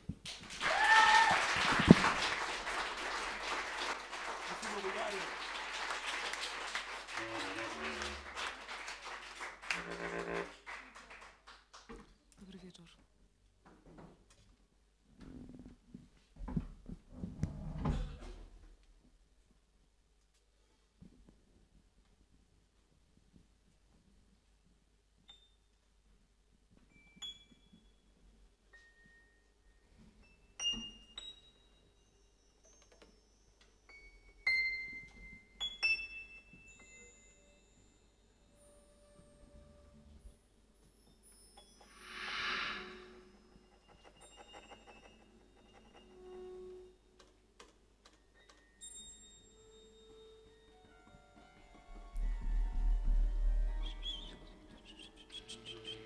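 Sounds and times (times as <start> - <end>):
short high chirping: 53.8 - 56.0.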